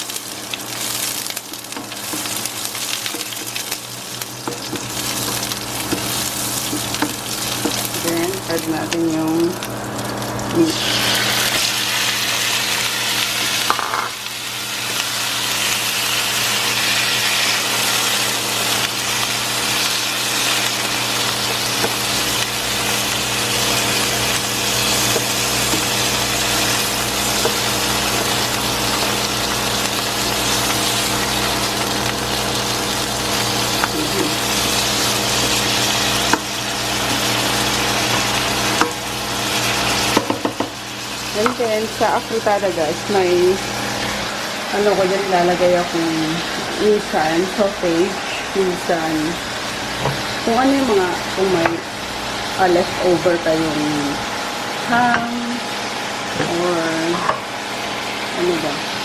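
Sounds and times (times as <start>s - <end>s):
meat sizzling in hot oil: 0.0s - 59.0s
spatula stirring in pan: 1.7s - 8.0s.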